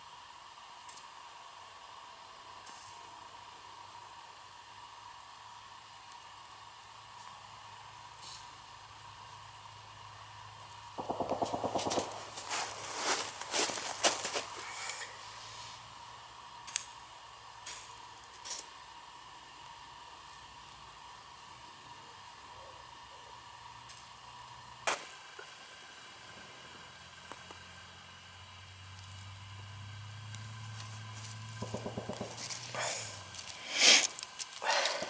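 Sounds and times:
faint steady hum: 0.0s - 35.0s
kindling handling noises: 11.6s - 15.0s.

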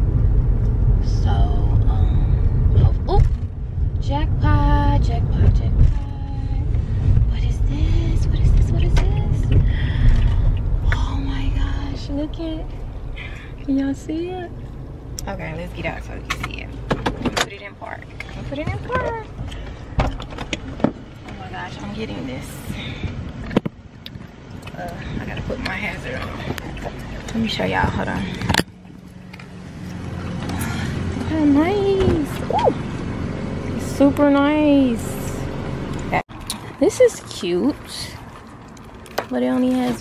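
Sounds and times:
car interior road and engine rumble: 0.0s - 40.0s.

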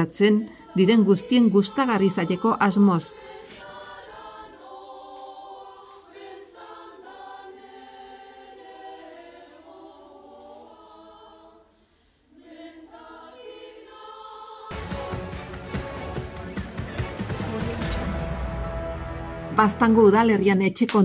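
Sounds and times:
women's choir singing: 0.0s - 15.5s.

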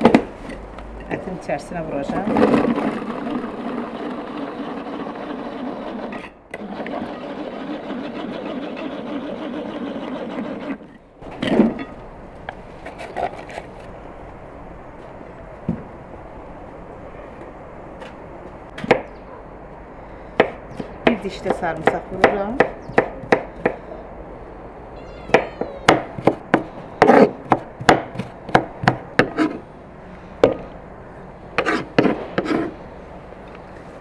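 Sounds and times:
pull-cord food chopper whirring: 2.3s - 11.0s.

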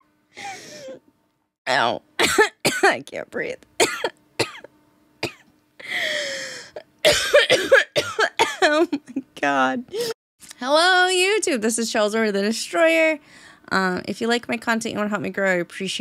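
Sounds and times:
woman coughing: 2.2s - 3.0s, 3.8s - 5.4s, 7.0s - 9.1s
long gasping breath: 5.8s - 6.8s
woman laughing hard: 8.6s - 9.3s.

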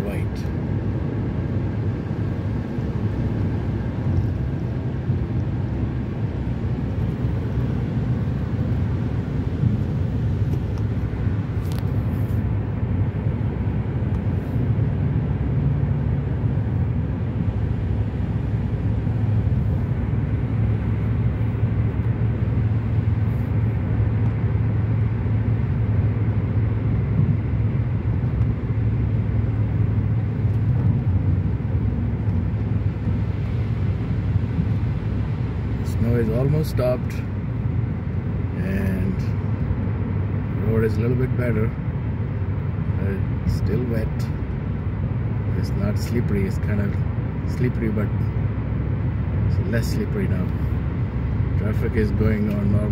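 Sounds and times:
car engine hum: 0.0s - 52.9s.

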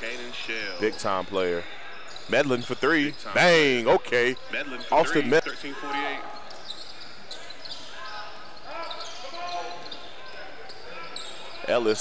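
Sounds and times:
sneakers squeaking on court: 0.0s - 12.0s.

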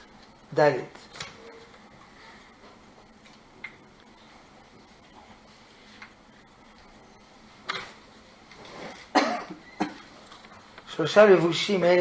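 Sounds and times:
man coughing: 9.1s - 10.1s.

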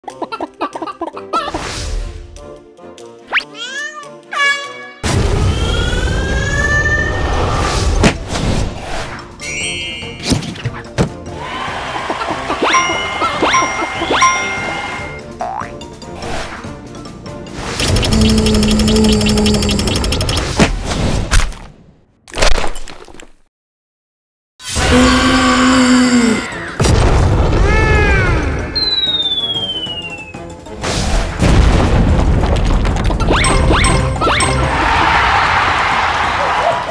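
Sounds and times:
cartoon cow wailing: 5.8s - 7.5s.

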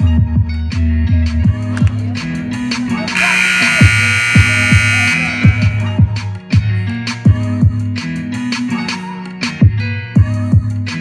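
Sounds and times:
scoreboard buzzer: 3.2s - 6.2s.

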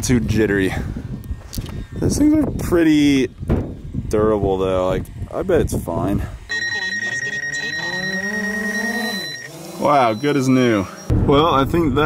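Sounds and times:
drone propellers whining: 1.2s - 12.0s
high pulsing beep: 6.5s - 12.0s.

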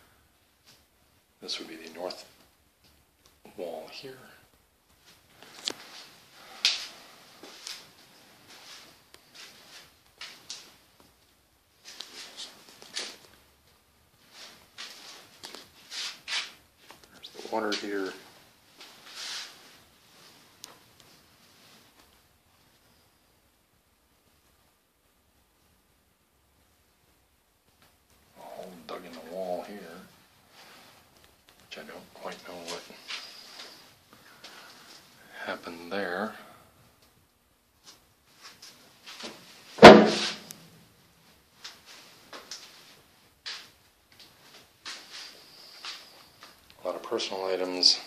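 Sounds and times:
footstep scuffs and rustles: 4.8s - 22.3s, 28.6s - 35.2s, 37.8s - 47.8s.

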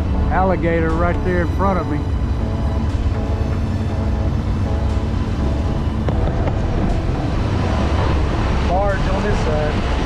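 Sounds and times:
music playing: 0.0s - 9.8s
boat engine rumbling: 0.0s - 10.0s.

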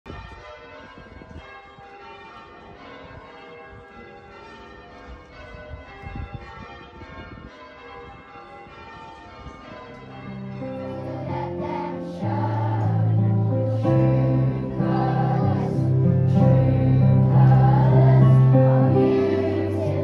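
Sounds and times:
bells ringing: 0.1s - 20.0s.

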